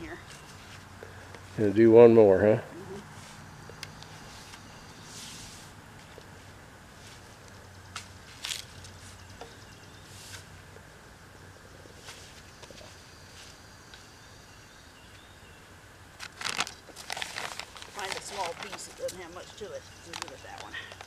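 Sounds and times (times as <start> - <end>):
rustling and scraping: 0.0 - 1.8, 3.0 - 10.8, 11.8 - 13.6, 16.2 - 21.0.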